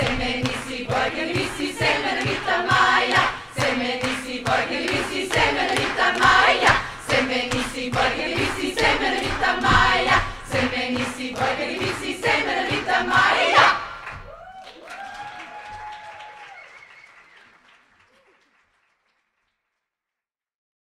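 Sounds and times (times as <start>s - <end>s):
applause: 0.0s - 9.5s, 13.9s - 20.0s
women's choir singing: 0.0s - 14.2s
faint cheer: 14.1s - 18.5s.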